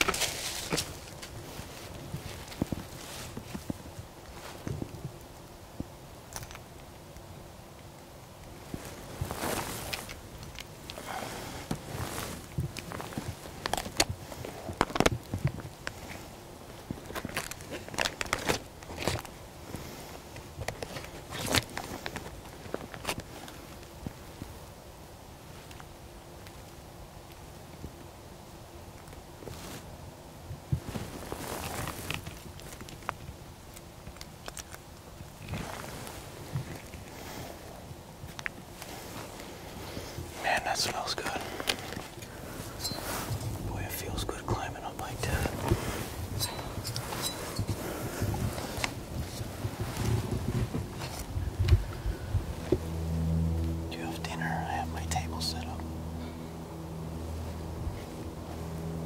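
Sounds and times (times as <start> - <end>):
footsteps in dry leaves: 0.0 - 3.5.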